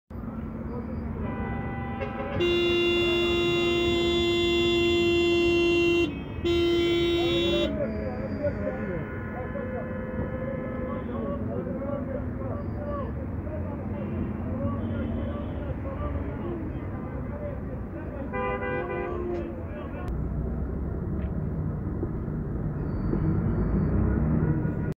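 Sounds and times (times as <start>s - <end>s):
street traffic: 0.1s - 24.9s
vehicle horn blasts: 1.2s - 7.8s, 8.6s - 11.3s, 18.3s - 19.6s.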